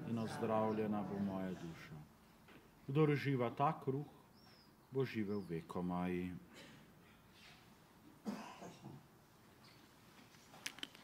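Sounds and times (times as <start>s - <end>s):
person coughing: 6.5s - 6.9s, 8.2s - 9.0s.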